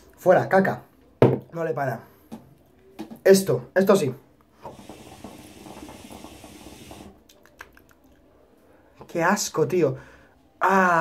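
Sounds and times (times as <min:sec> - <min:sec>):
hookah water bubbling: 0:04.6 - 0:07.5.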